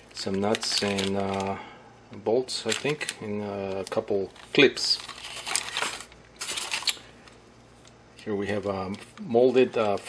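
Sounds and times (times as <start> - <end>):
plastic bag crinkling: 0.0 - 1.6, 2.5 - 7.4.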